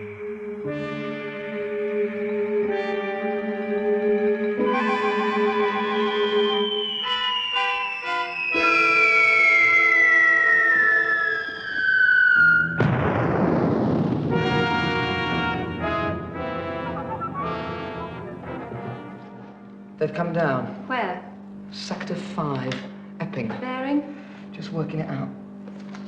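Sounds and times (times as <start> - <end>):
orchestral music with brass chords: 0.0 - 6.5, 14.2 - 19.7
falling electronic whine: 0.0 - 20.0
loud crash and rushing noise: 12.8 - 15.8.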